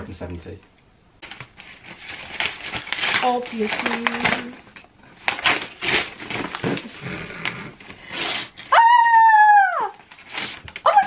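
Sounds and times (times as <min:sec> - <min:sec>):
paper bags rustling: 0:01.2 - 0:08.7
woman squealing excitedly: 0:08.7 - 0:10.0.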